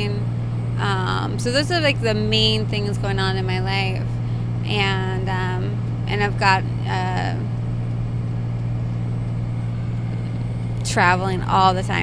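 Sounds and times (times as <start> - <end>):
woman speaking: 0.0 - 4.1, 4.7 - 7.5, 10.8 - 12.0.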